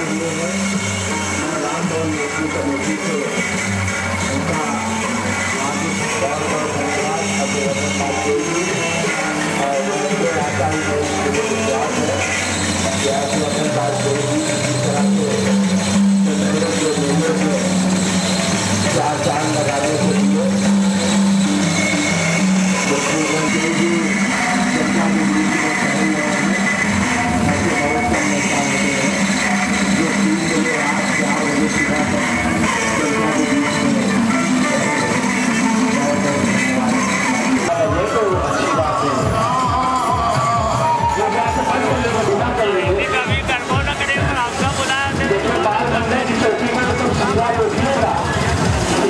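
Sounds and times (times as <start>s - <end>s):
many voices: 0.0s - 49.0s
music: 0.0s - 49.0s.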